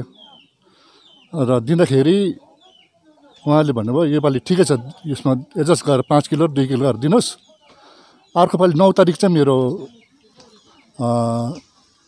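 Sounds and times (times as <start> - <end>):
faint bird chirp: 0.0 - 12.0
man speaking: 1.3 - 2.5, 3.4 - 7.4, 8.4 - 9.9, 11.0 - 11.6.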